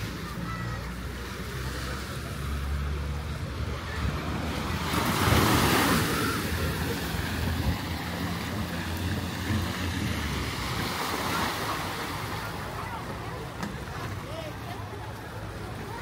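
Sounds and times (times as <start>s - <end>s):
jet ski engine hum: 0.0s - 16.0s
small waves breaking on sand: 0.0s - 16.0s.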